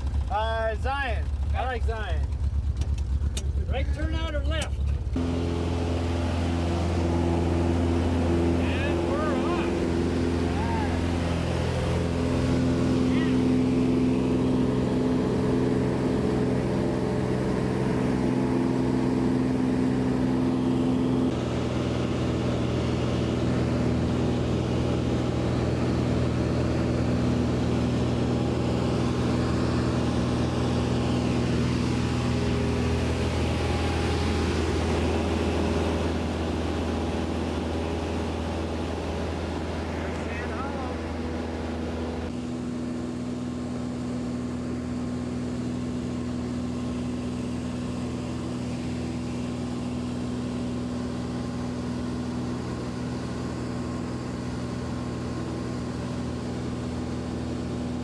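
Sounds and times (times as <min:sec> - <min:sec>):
light aircraft engine drone: 0:00.0 - 0:58.0.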